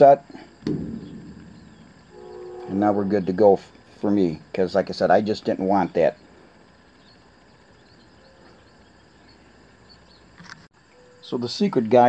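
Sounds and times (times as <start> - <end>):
faint high chirps: 5.8 - 11.9.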